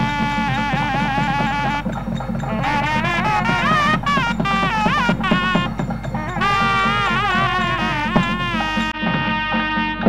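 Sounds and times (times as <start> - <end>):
buzzy reed instrument melody: 0.0 - 10.0
steady drum beat: 0.0 - 10.0.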